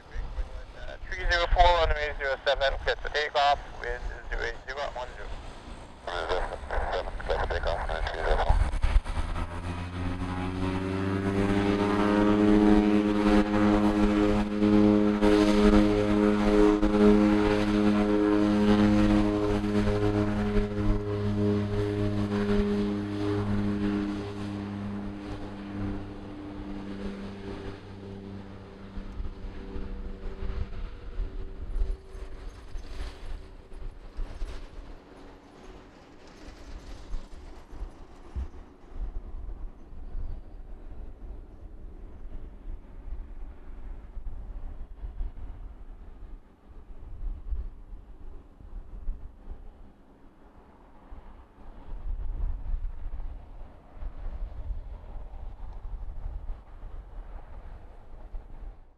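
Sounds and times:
turboprop propeller drone: 0.0s - 58.9s.

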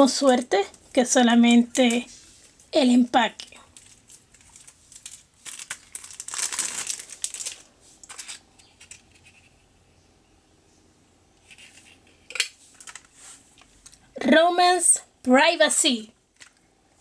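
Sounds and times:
plastic wrapping crinkling: 1.6s - 9.3s.

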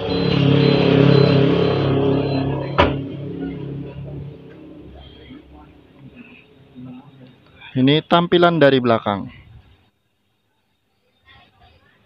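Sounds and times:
car horn long blast: 0.0s - 4.3s.

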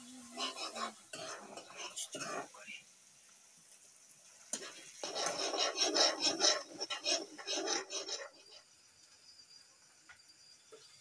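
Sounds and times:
metal spoon scraping a wok: 4.6s - 8.4s.

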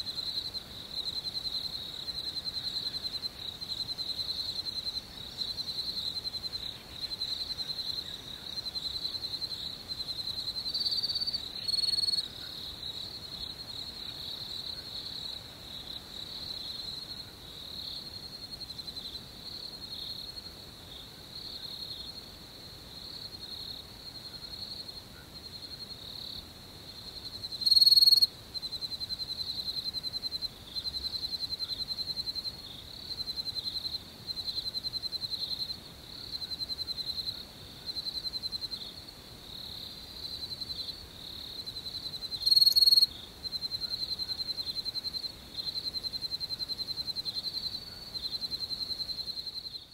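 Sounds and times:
insects chirping trill: 0.0s - 49.9s.

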